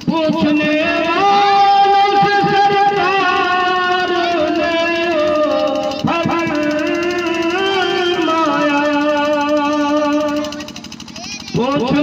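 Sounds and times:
man singing through microphone: 0:00.0 - 0:10.5.

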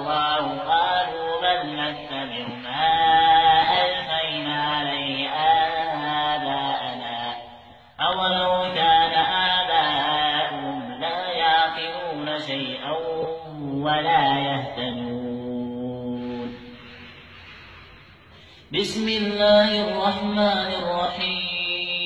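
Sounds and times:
man chanting melodically: 0:00.0 - 0:17.0, 0:18.7 - 0:22.0.

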